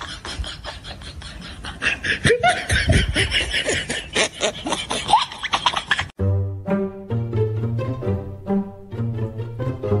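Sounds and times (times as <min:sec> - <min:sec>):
laughter in quick bursts: 0:00.0 - 0:06.2.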